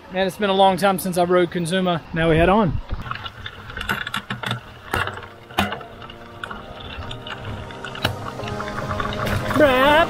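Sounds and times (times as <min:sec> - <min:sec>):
mountain bike rattling over rocks: 0:03.0 - 0:10.0.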